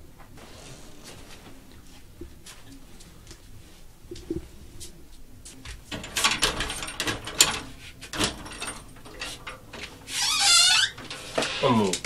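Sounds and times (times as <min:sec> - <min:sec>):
glass window rattling: 0:05.9 - 0:11.2.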